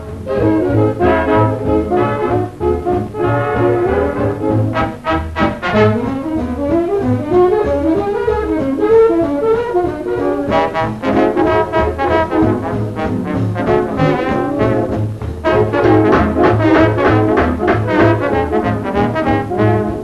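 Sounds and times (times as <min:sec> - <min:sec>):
swing big band playing: 0:00.0 - 0:20.0.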